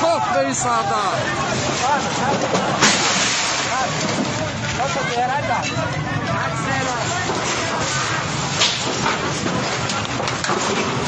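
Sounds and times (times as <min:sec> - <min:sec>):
loud rushing noise: 0:00.1 - 0:05.1, 0:06.0 - 0:11.0.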